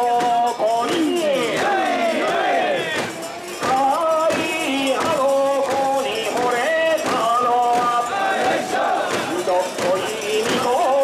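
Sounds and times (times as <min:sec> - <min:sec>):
men chanting in chorus: 0:00.0 - 0:11.0.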